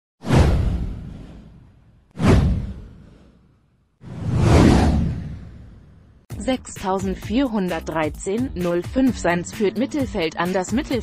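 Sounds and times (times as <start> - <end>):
whoosh sweeping down: 4.0 - 6.2.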